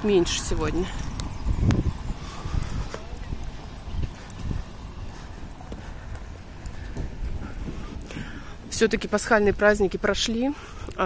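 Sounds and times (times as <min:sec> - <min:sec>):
wind buffeting microphone: 0:00.0 - 0:11.0
footsteps on paving: 0:02.4 - 0:09.8.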